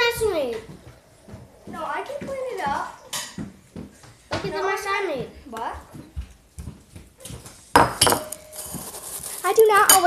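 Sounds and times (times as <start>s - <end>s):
dishes and cutlery clattering: 3.1s - 3.4s, 7.8s - 8.8s, 9.8s - 10.0s.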